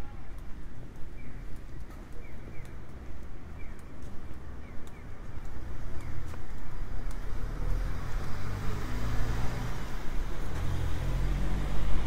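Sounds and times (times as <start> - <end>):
tyre noise on road: 0.0 - 12.0.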